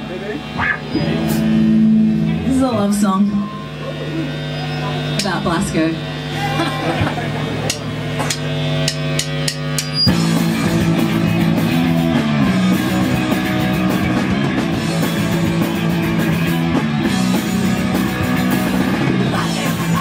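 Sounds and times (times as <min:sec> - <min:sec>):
held guitar chord ringing: 0:00.0 - 0:19.0
rock band playing loud: 0:00.0 - 0:20.0
sharp clicks: 0:07.7 - 0:10.1.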